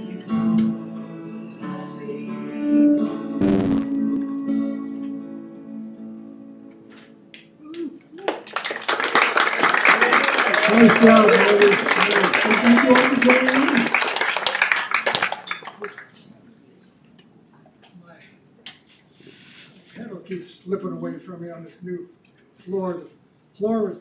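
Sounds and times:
audience clapping: 7.4 - 16.2.

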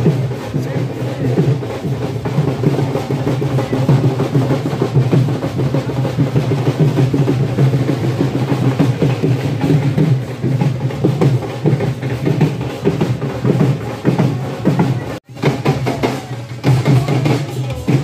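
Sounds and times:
drums beating: 0.0 - 18.0.

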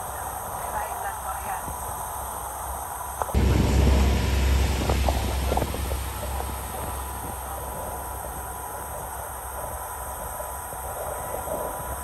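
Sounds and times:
deep rumble of boat: 0.0 - 12.0
water rushing: 0.0 - 12.0.

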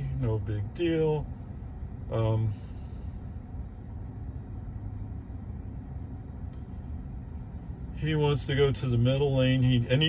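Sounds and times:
low hum inside car cabin: 0.0 - 10.0.

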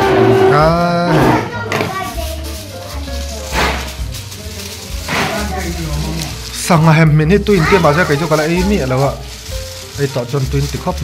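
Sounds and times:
aluminium foil crinkling: 0.6 - 11.0
person speaking: 4.3 - 11.0.

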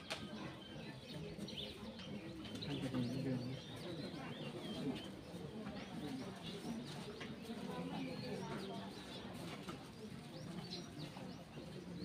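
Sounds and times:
murmur of voices: 0.0 - 12.0
small birds chirping: 0.0 - 12.0.

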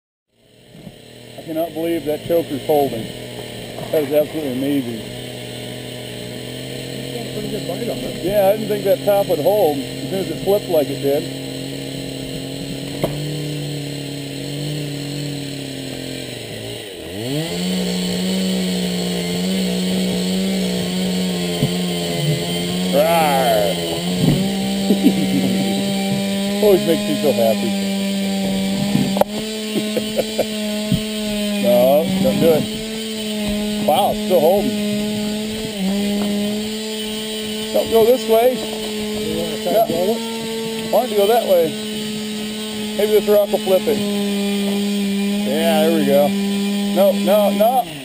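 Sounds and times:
chainsaw engine under load: 0.3 - 48.0.

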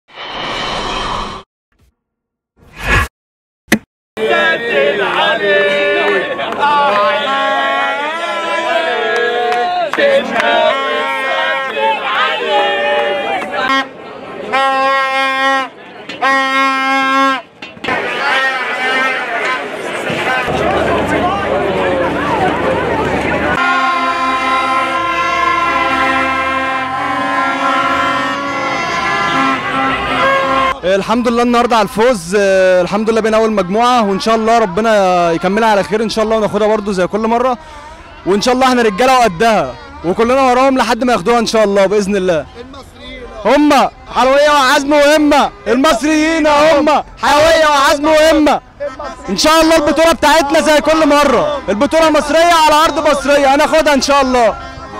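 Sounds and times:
crowd shouting and talking: 4.2 - 54.9
plastic stadium horn blown: 6.8 - 20.6, 23.5 - 31.6, 48.2 - 54.8.

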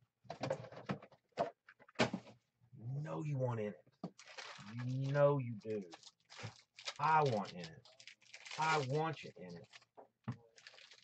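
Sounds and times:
man's voice: 2.8 - 3.8, 4.7 - 5.9, 7.0 - 7.8, 8.6 - 9.6
wrappers crinkling and rustling: 4.1 - 11.0.

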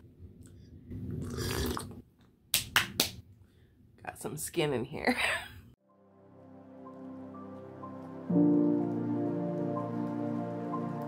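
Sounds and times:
coffee slurped from a mug: 1.2 - 2.0.

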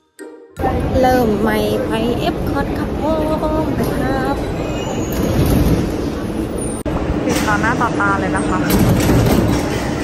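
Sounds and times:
monorail running rumble: 0.6 - 10.0.

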